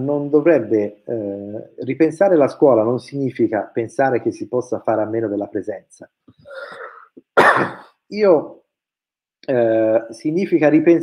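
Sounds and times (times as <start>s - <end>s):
man drawing a breath: 6.4s - 7.1s
man's short cough-like burst: 7.4s - 8.0s.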